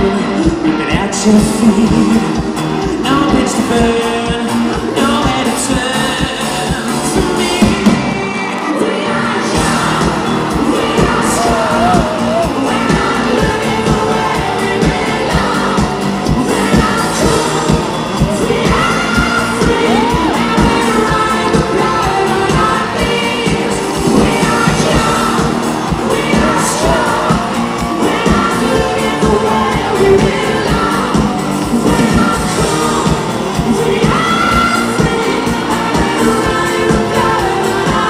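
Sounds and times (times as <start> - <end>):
bass guitar: 0.0 - 38.0
crowd cheering and singing along: 0.0 - 38.0
male lead singer: 0.0 - 38.0
drum beat: 9.6 - 38.0.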